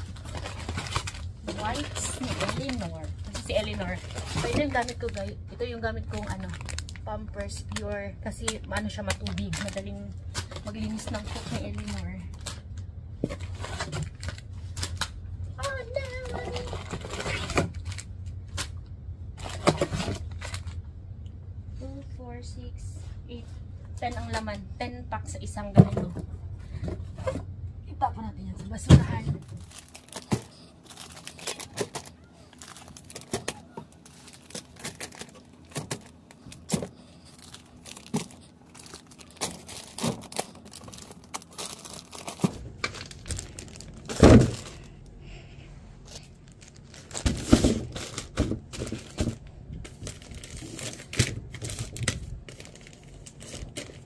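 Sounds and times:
plastic packs rustling and crinkling: 0.0s - 20.8s, 28.9s - 45.4s, 46.0s - 54.0s
low background hum: 0.0s - 54.0s.

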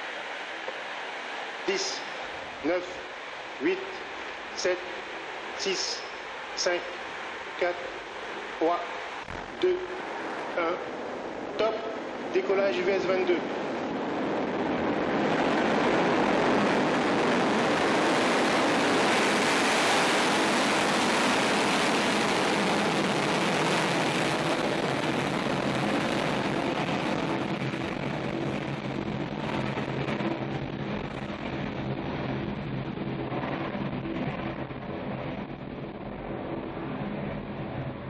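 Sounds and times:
rocket engines roaring: 0.0s - 38.0s.

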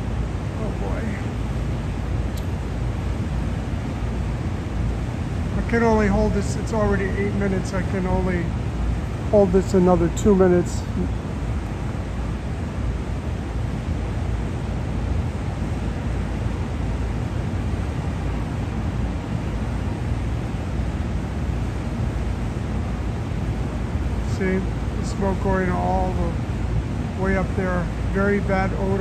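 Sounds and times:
city background rumble: 0.0s - 29.0s.

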